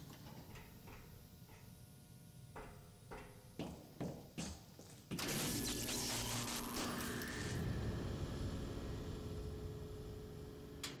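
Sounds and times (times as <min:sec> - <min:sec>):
low rumbling drone: 0:06.2 - 0:10.6
faint steady hum tone: 0:06.2 - 0:11.0.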